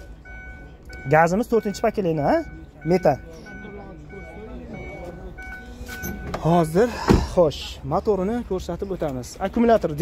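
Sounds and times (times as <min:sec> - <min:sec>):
high-pitched tone: 0:00.0 - 0:06.8
indistinct background voices: 0:01.6 - 0:10.0.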